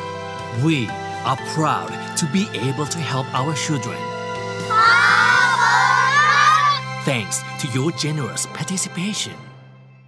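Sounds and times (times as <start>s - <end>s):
children calling out in unison: 4.6s - 6.9s.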